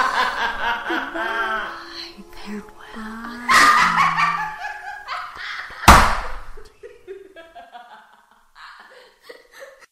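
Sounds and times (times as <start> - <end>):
person laughing: 0.0 - 1.8, 3.5 - 5.9
sharp thump: 5.9 - 6.5.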